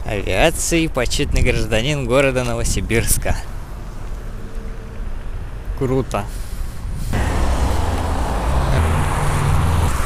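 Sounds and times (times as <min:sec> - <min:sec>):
road noise: 0:00.0 - 0:10.0
vehicle engine rumbling: 0:03.5 - 0:10.0.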